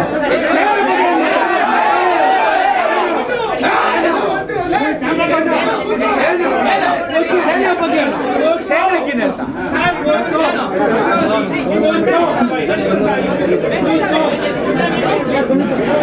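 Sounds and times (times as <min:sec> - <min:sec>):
men arguing loudly: 0:00.0 - 0:16.0.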